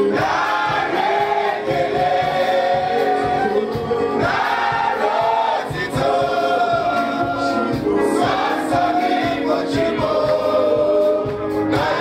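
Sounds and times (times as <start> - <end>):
congregation singing a worship song: 0.0 - 12.0.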